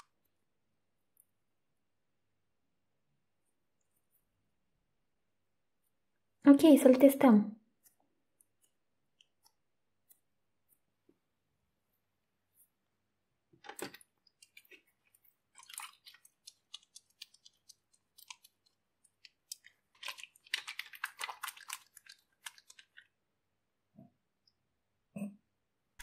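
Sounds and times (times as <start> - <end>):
wet hands kneading soap dough: 7.7 - 23.7.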